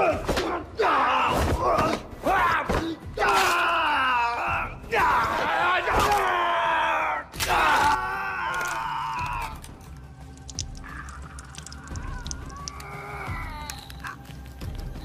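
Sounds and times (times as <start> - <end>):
film music: 0.0 - 15.0
person screaming: 11.0 - 13.9.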